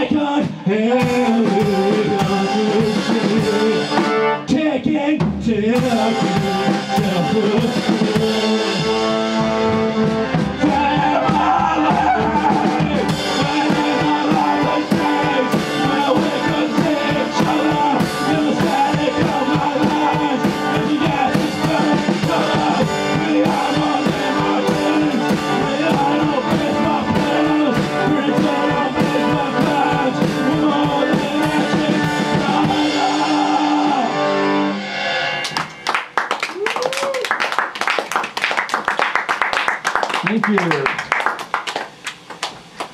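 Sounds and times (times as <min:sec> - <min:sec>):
steady drumbeat: 0:00.0 - 0:04.3, 0:05.2 - 0:34.0
accordion chords: 0:00.9 - 0:04.5, 0:05.8 - 0:35.2
audience clapping: 0:35.4 - 0:42.9.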